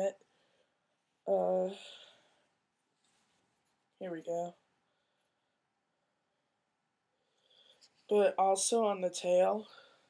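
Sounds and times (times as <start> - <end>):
fabric rustle: 2.8 - 4.0.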